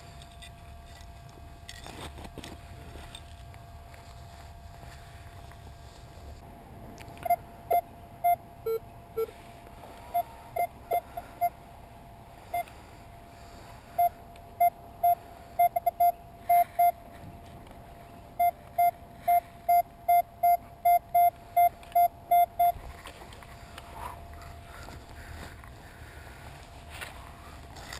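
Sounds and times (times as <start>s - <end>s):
metal detector beeps: 7.2s - 9.3s, 10.1s - 11.6s, 14.0s - 17.0s, 18.4s - 22.8s.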